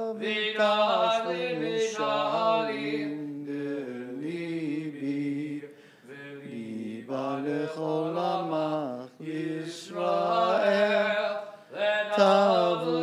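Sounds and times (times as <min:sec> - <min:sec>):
man chanting prayer: 0:00.0 - 0:02.0, 0:11.8 - 0:13.0.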